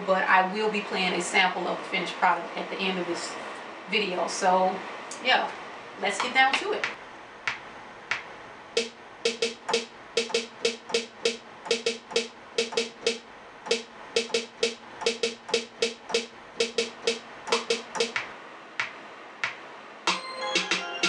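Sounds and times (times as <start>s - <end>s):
snare drum hits: 7.5s - 20.2s.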